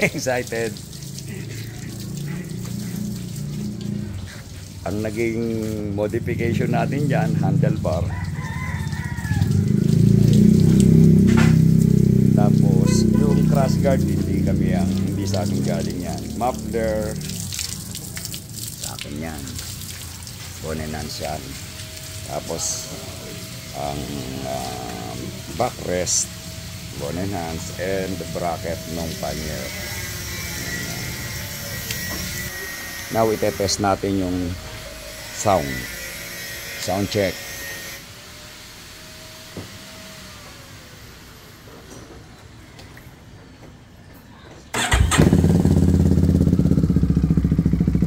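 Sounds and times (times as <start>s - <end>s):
low mechanical drone: 0.0s - 8.2s, 9.0s - 19.8s, 20.4s - 42.9s
rooster crowing: 7.9s - 11.2s
motor humming: 21.0s - 41.8s.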